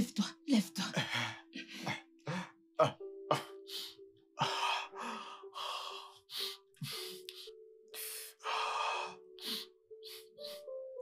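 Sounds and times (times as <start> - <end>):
soft background music: 0.0 - 11.0
man sobbing: 0.6 - 5.5.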